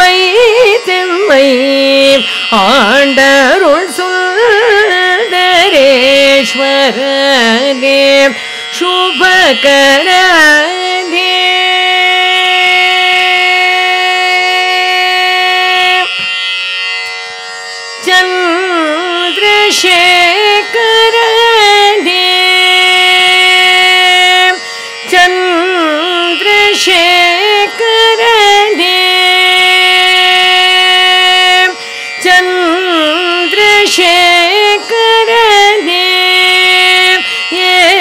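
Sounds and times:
woman singing a long note: 0.0 - 16.2, 18.0 - 38.0.

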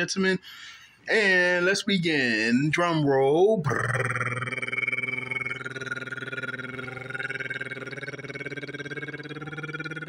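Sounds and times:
man rolling tongue trill: 3.6 - 10.0.

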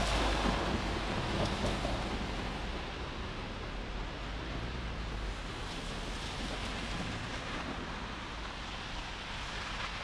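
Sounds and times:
tyres swishing on wet asphalt: 0.0 - 2.8, 5.6 - 10.0
traffic hiss on wet streets: 0.0 - 10.0.

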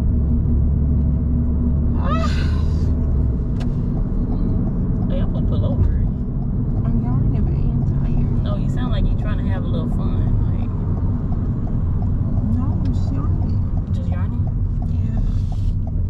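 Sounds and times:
road and engine rumble in car: 0.0 - 16.0.

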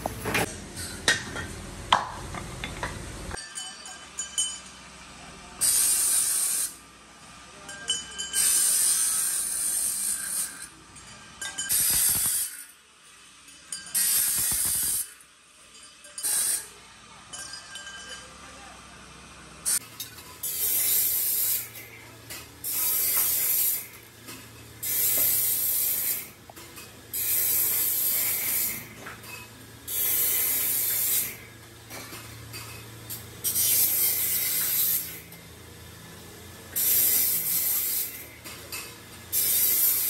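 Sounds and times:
steel tube bending hiss and scrape: 5.6 - 6.8, 8.4 - 10.8, 11.7 - 12.8, 14.0 - 15.2, 16.2 - 16.8, 20.4 - 22.0, 22.6 - 32.8, 33.4 - 35.3, 36.7 - 40.0.

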